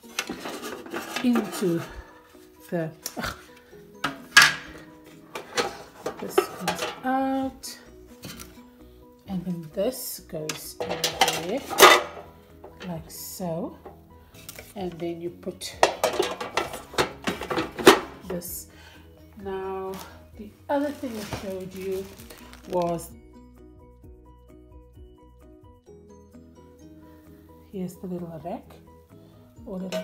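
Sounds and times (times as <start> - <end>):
plastic parts knocking together: 4.0 - 7.0, 15.8 - 18.2.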